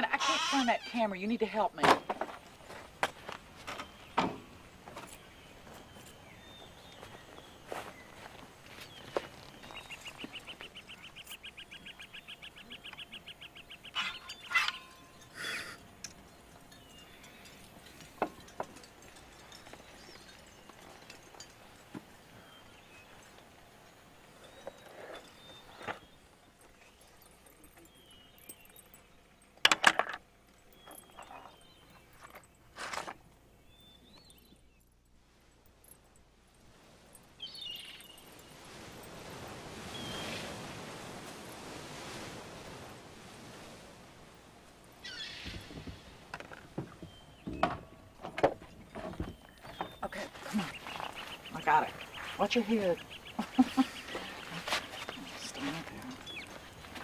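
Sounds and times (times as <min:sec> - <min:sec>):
small handling clicks and knocks: 0:29.6 - 0:30.3.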